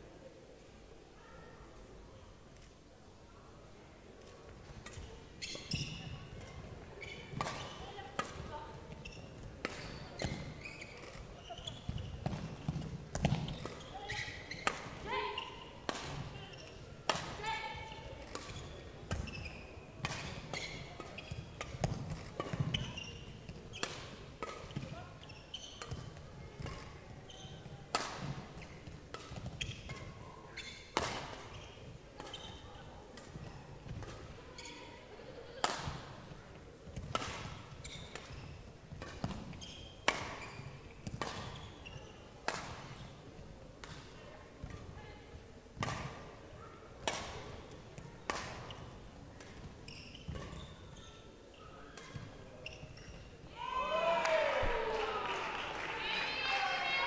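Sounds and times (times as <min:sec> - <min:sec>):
badminton rackets hitting shuttlecock: 0:07.3 - 0:15.1, 0:15.8 - 0:17.4, 0:18.0 - 0:24.9, 0:25.6 - 0:30.2, 0:30.9 - 0:31.6, 0:35.5 - 0:36.1, 0:36.9 - 0:43.1, 0:47.0 - 0:49.7.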